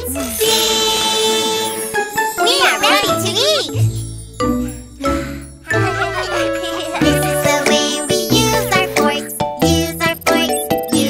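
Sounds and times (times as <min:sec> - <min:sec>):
cartoon music with jingly effects: 0:00.0 - 0:11.0.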